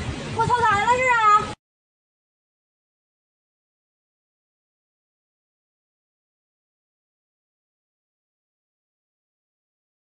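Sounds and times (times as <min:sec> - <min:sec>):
wind buffeting microphone: 0:00.0 - 0:01.6.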